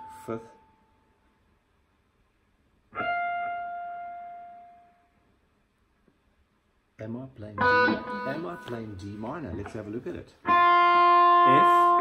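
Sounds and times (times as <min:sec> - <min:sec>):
electric guitar note ringing: 0:00.0 - 0:00.8, 0:07.5 - 0:12.0.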